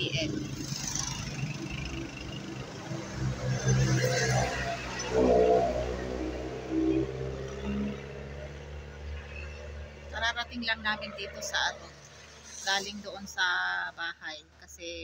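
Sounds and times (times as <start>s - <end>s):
vehicle engine humming: 0.0s - 14.6s.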